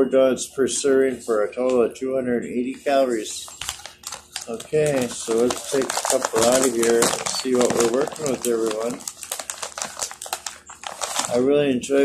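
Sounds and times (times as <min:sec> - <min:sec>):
plastic snack bag crinkling: 0:03.3 - 0:11.5.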